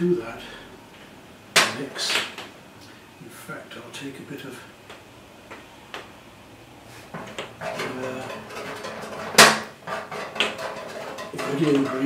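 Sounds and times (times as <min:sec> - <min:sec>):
knocks and rubbing of painting tools: 0:07.0 - 0:12.0.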